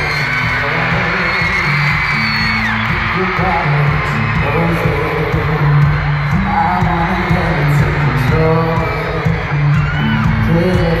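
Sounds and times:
crowd screaming and whooping: 0.0s - 11.0s
live pop band: 0.0s - 11.0s.

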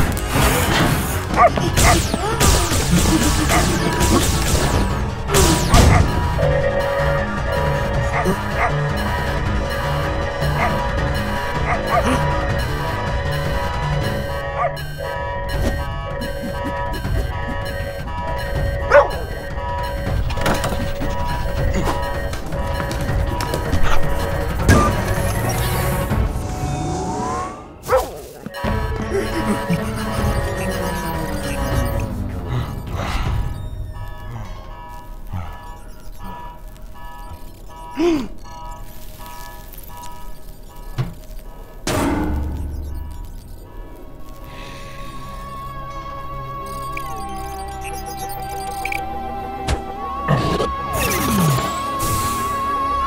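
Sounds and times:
background music: 0.0s - 53.0s
dog barking: 1.3s - 2.0s, 8.1s - 8.8s, 10.6s - 10.8s, 14.5s - 14.8s, 18.8s - 19.3s, 27.8s - 28.2s.

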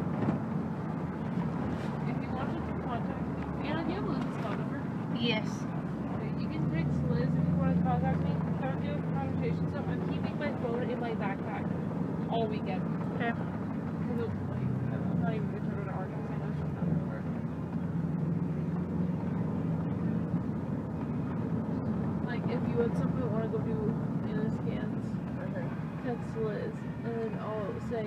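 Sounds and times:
car engine and tyres rumbling: 0.0s - 28.0s.

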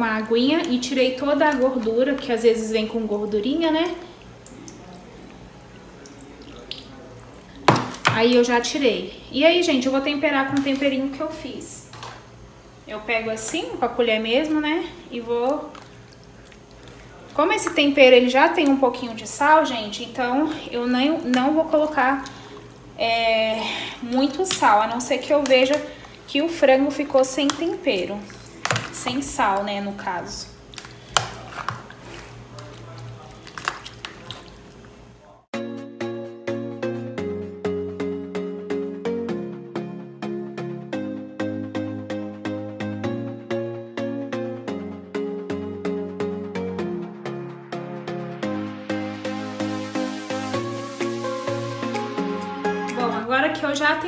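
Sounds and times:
wet squelching: 3.7s - 8.1s, 15.2s - 19.4s, 20.5s - 35.2s.

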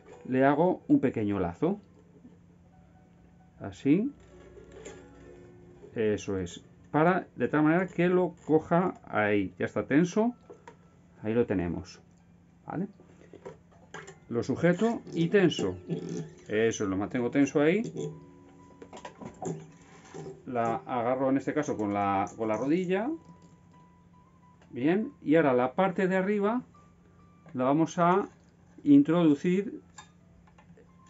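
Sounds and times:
plucked strings ringing: 0.0s - 31.0s.

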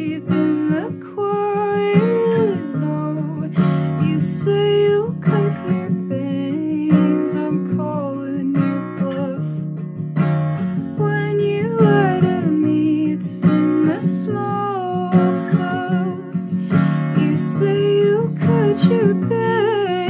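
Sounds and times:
acoustic guitar strumming: 0.0s - 20.0s
woman singing: 0.0s - 20.0s.

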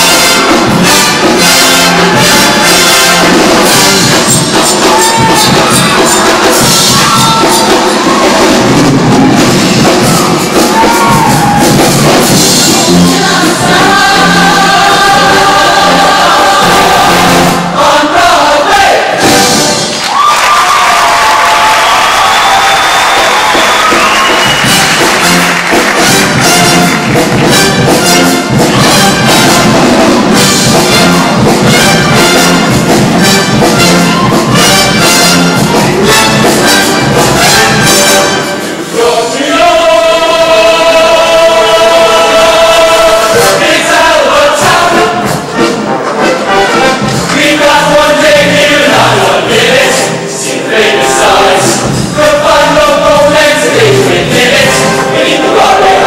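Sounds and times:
choir singing: 0.0s - 20.0s, 26.0s - 56.0s
live band accompaniment: 0.0s - 56.0s.

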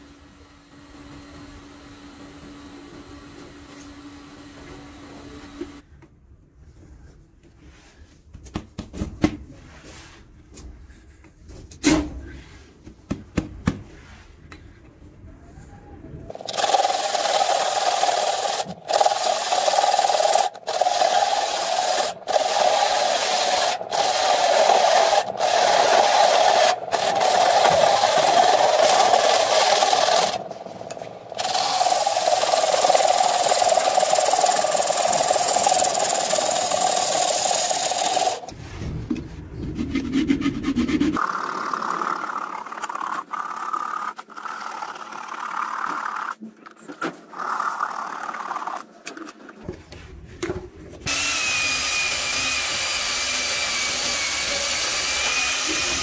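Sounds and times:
handsaw cutting wood: 16.3s - 38.6s, 51.1s - 56.0s
turning tool rasping wood: 16.3s - 38.6s, 39.9s - 46.4s, 51.1s - 56.0s
wood spinning on a lathe: 16.3s - 38.6s, 40.0s - 46.4s, 47.3s - 48.9s, 51.1s - 56.0s.

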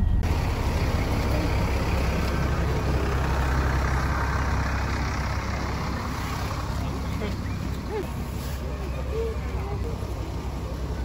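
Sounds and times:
low engine rumble: 0.0s - 11.0s
outdoor noise: 0.0s - 11.0s.

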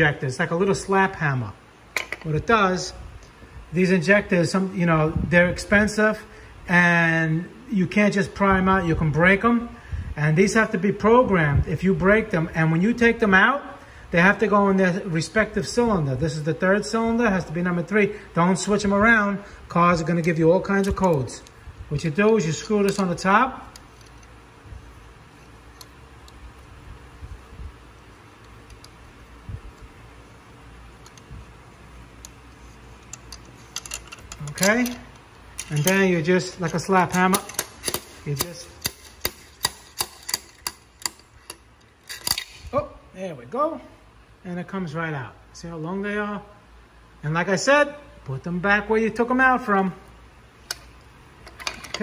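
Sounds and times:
faint metal clicks and ticks: 32.2s - 42.6s.

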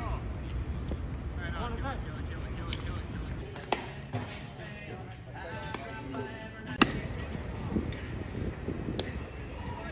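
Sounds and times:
baseball smacking into mitt: 3.6s - 4.2s, 6.8s - 7.1s.

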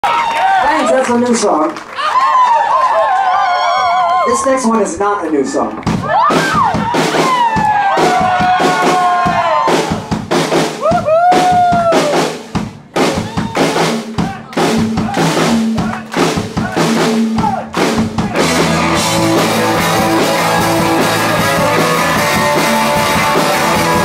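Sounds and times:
rock band playing: 5.7s - 24.0s
drum kit hits and fills: 5.8s - 24.0s.

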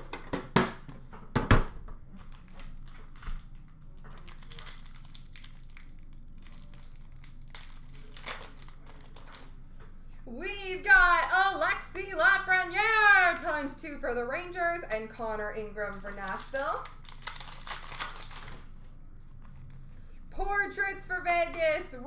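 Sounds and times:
foil wrappers crinkling: 2.2s - 9.6s, 15.8s - 20.2s
person speaking: 10.3s - 17.0s.

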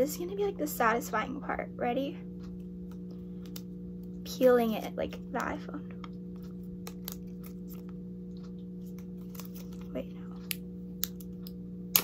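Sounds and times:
plastic film peeling crackles: 6.2s - 12.0s.

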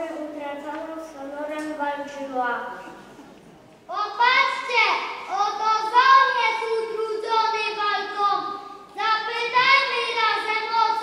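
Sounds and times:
child singing into a microphone: 3.9s - 11.0s.

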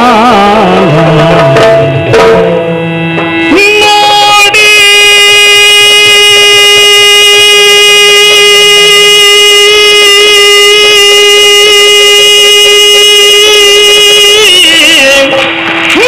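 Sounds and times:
singer holding long note: 0.0s - 16.0s
soft drumming: 1.2s - 3.5s.

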